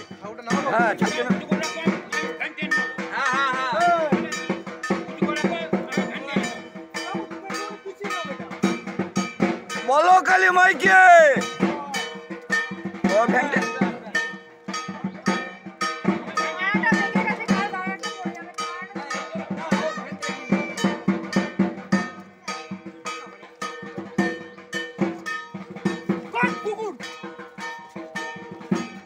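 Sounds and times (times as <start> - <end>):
drum and bell music: 0.0 - 29.0
voices calling out: 0.0 - 29.0.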